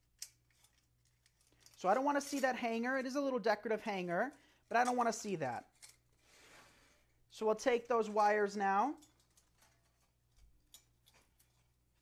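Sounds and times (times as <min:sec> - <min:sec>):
wire and tin sign ticks and rustles: 0:00.0 - 0:03.4, 0:07.7 - 0:12.0.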